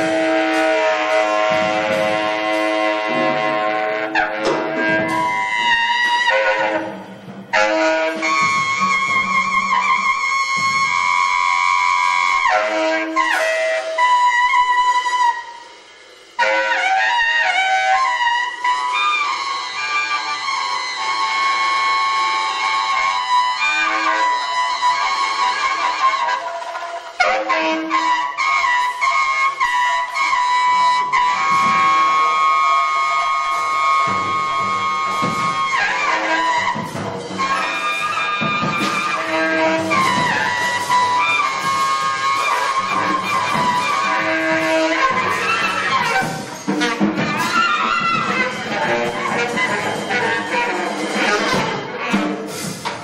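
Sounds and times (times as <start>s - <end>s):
free jazz saxophone: 0.0s - 15.7s, 16.4s - 53.0s
drum kit: 0.0s - 25.2s, 30.0s - 53.0s.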